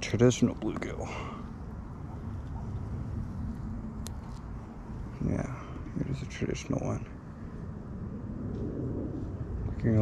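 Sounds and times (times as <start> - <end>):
low outdoor rumble: 0.0 - 10.0.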